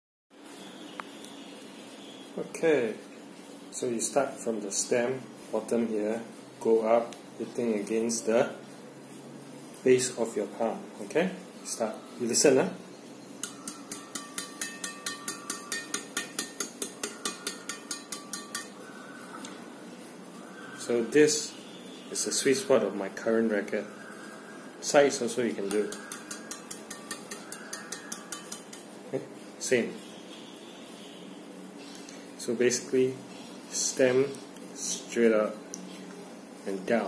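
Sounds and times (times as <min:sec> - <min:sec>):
room background hum: 0:00.4 - 0:37.0
racquet strings pinging: 0:13.4 - 0:18.8, 0:25.6 - 0:28.8.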